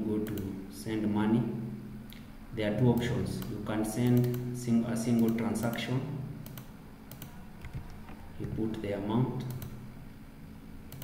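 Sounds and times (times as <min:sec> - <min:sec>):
keyboard keystrokes: 0:06.4 - 0:08.6.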